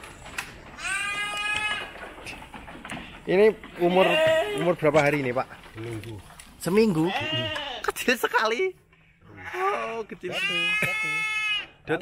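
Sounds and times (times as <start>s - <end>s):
goat kid bleating: 0.8s - 2.0s, 3.9s - 4.7s, 6.9s - 7.9s, 9.3s - 11.8s.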